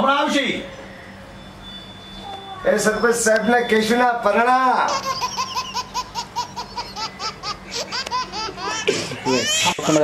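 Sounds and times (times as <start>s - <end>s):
person laughing: 7.6s - 10.0s.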